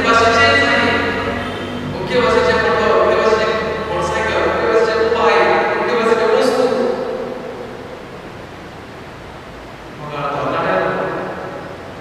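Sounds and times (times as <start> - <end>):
man speaking echoing: 0.0 - 8.2, 10.0 - 11.8
steady hiss: 0.0 - 12.0.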